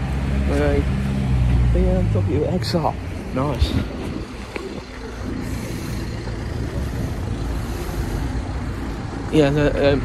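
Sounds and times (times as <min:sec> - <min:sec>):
road vehicle going by: 0:00.0 - 0:10.0.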